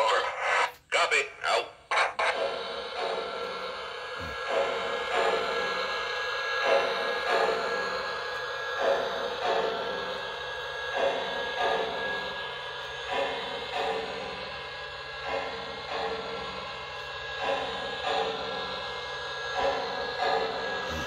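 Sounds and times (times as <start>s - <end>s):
toy train running on track: 0.0s - 21.0s.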